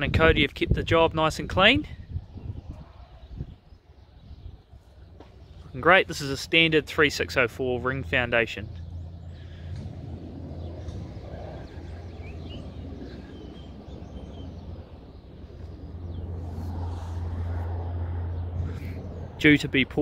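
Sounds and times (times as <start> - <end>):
steady low rumble: 0.0 - 20.0.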